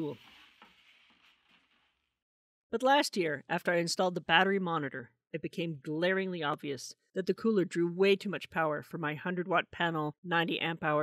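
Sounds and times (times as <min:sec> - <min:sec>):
foam sheets rubbing: 0:00.0 - 0:02.1.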